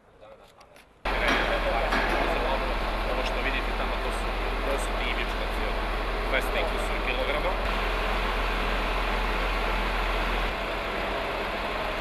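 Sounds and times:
people talking: 0.2s - 7.6s
machinery humming: 1.1s - 12.0s.

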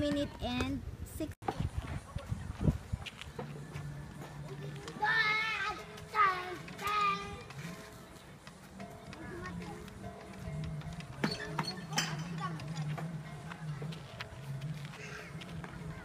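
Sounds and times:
background music: 2.9s - 16.0s
children playing: 4.4s - 8.1s, 9.0s - 10.4s, 11.1s - 16.0s.

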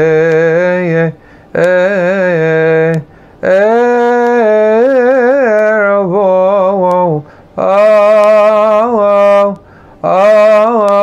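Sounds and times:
man chanting solo: 0.0s - 11.0s
man breathing: 1.2s - 1.6s, 3.0s - 3.4s, 7.2s - 7.6s, 9.6s - 10.0s.

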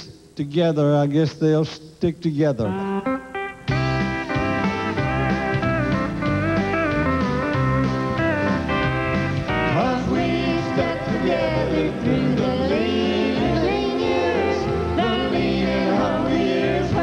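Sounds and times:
country band playing: 2.6s - 17.0s
pedal steel guitar: 2.6s - 17.0s.

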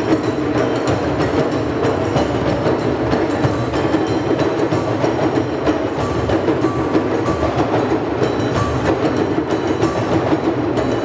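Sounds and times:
djembe drumming: 0.0s - 11.0s.

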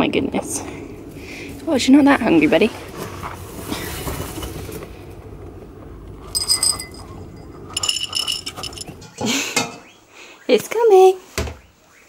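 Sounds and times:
metallic ringing: 6.2s - 9.2s.

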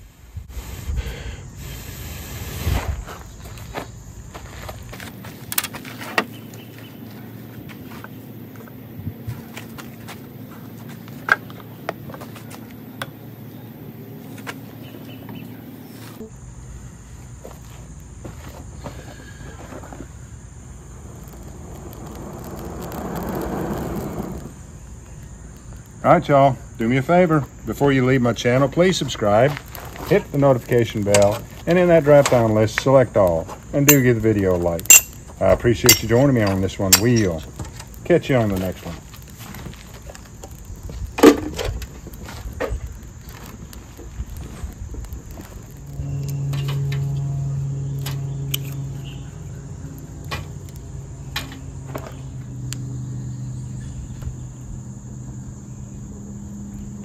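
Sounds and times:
person blowing on tinder: 0.5s - 2.9s, 21.0s - 24.6s
dry tinder crackling and rustling: 2.4s - 16.2s, 17.2s - 26.0s, 26.7s - 52.9s.

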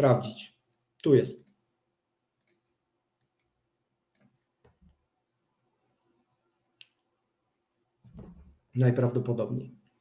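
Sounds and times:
faint computer mouse clicks: 2.4s - 2.6s.

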